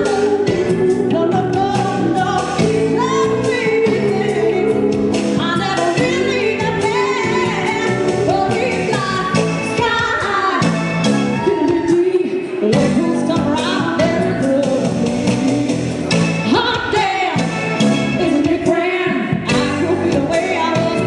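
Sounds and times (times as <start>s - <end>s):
live band playing: 0.0s - 21.0s
woman singing into microphone: 0.0s - 21.0s.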